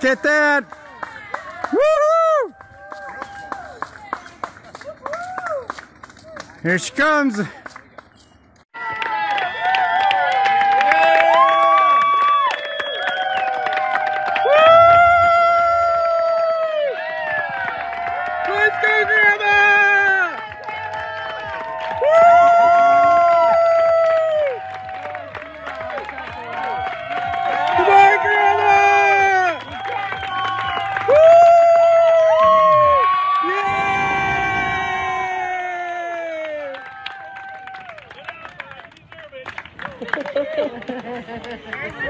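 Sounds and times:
crowd cheering and whooping: 0:00.9 - 0:03.9, 0:04.8 - 0:05.8, 0:08.8 - 0:38.1.

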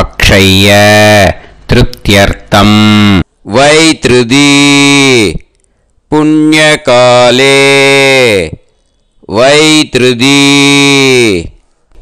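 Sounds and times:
man chanting in long notes: 0:06.1 - 0:08.6.

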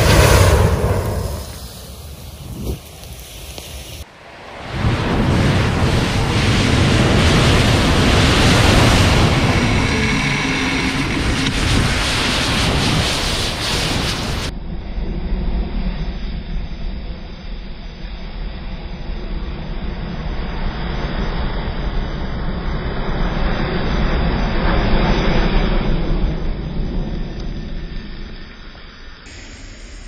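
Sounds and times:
burning matches flaring: 0:00.0 - 0:04.0.

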